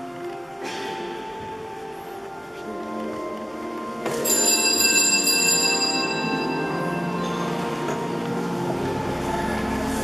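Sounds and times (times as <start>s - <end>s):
small bells ringing: 4.2s - 7.9s.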